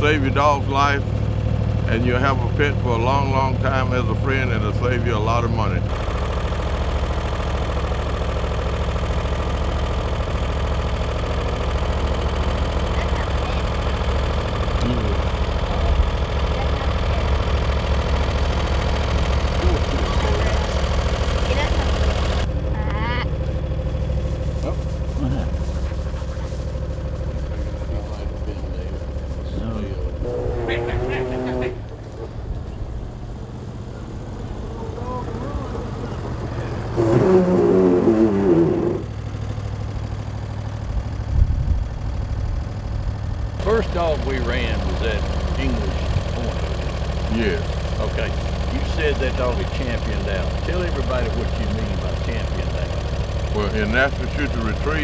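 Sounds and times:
low engine hum: 0:00.0 - 0:55.0.

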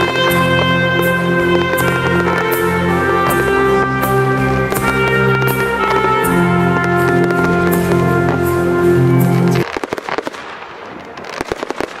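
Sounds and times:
fireworks cracking and popping: 0:00.0 - 0:12.0.

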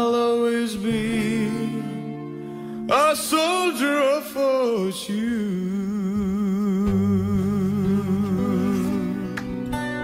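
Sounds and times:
man singing with vibrato: 0:00.0 - 0:09.4
acoustic guitar: 0:00.0 - 0:10.0.

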